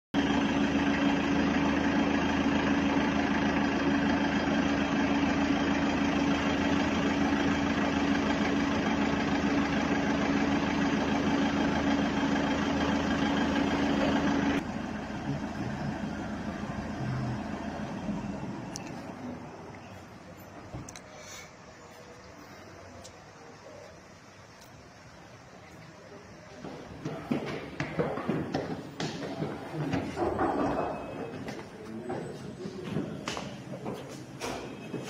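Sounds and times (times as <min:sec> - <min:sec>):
steady mechanical hum: 0:00.2 - 0:35.0.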